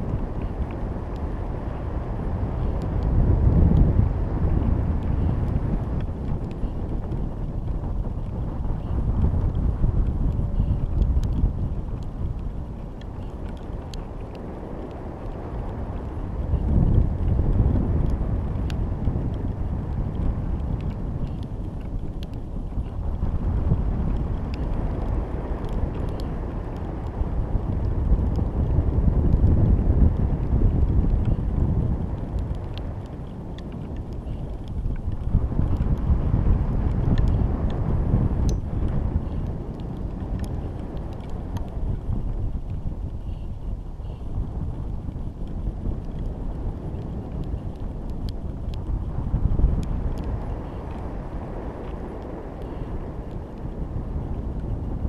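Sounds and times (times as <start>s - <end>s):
wind rumbling over camera: 0.0s - 55.0s
faint ticks: 2.5s - 54.9s.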